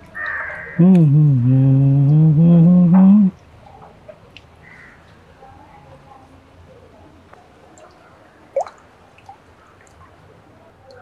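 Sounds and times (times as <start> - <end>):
water dripping into fish tank: 7.3 - 10.2, 10.8 - 11.0.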